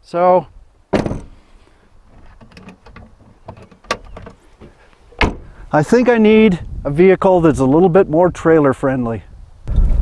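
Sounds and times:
sharp knock: 0.9 - 1.4
swing gate clicking and rattling: 2.1 - 5.5.

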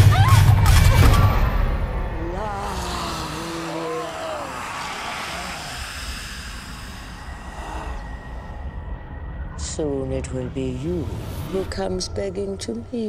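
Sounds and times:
low rumbling drone: 0.0 - 13.0.

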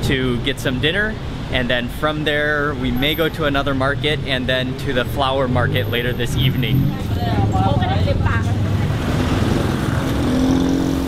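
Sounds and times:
voices: 0.0 - 9.4
car and motorcycle engines rumbling: 0.0 - 11.0
vehicle passing: 5.1 - 11.0.

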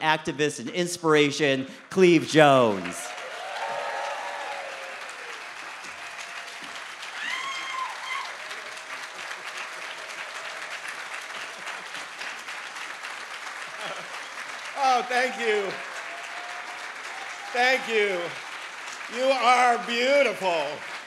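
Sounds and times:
audience applauding: 2.3 - 21.0
crowd cheer: 2.4 - 21.0.

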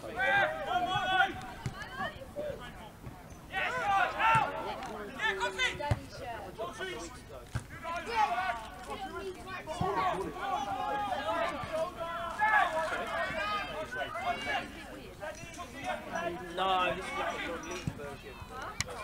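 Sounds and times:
players shouting: 0.0 - 19.0.

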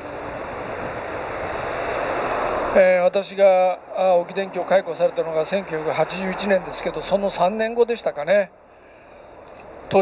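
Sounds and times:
passing vehicle rushing: 0.0 - 7.8.

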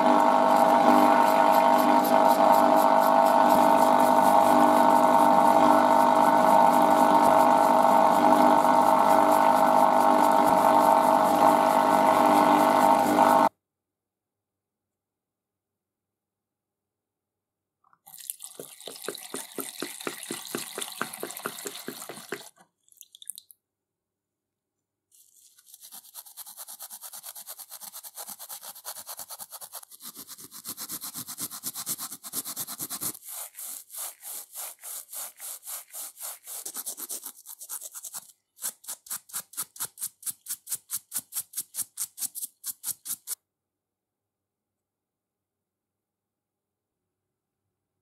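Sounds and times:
brush scrubbing rusty steel: 25.2 - 43.4.

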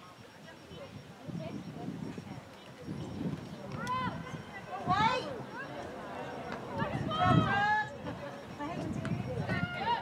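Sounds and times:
distant voices of players: 0.0 - 10.0.

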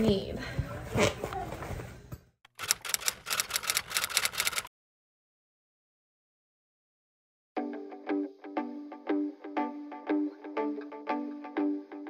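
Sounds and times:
typewriter key clacks: 2.5 - 4.7.

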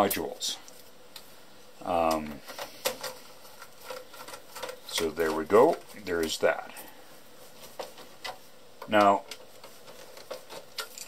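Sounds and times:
hands clicking on plastic and metal: 7.8 - 11.0.

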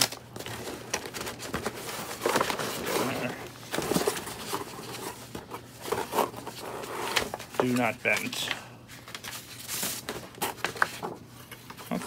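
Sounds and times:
paper and cardboard rustling: 0.0 - 12.0.

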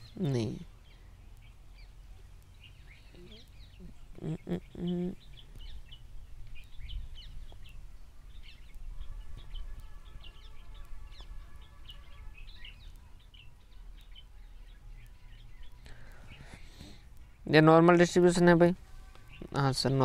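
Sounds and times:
birds chirping: 0.0 - 20.0
faint multi-pitched hum: 0.0 - 20.0.

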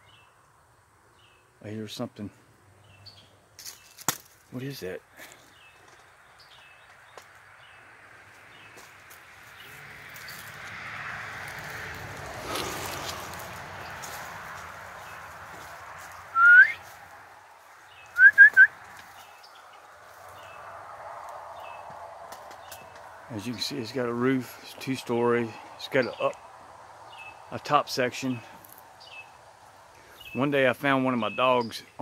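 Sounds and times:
leaves rustling: 3.5 - 6.8, 7.6 - 23.6
loud rising whistles: 16.3 - 16.8, 18.2 - 18.7.

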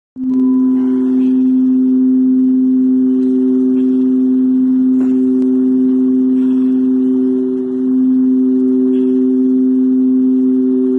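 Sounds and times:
loud drone of held tones: 0.2 - 10.9.

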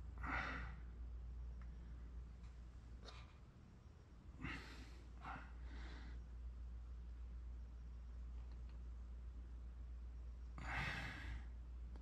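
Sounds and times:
faint low hum: 0.0 - 12.0.

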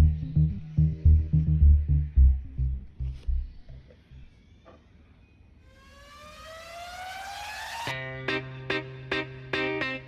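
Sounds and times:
synthesized rising tone: 5.7 - 7.9
plucked guitar music: 7.9 - 10.0.

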